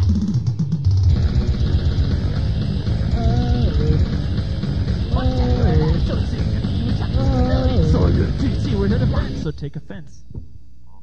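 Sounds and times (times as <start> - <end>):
fast grindcore band playing: 1.0 - 9.5.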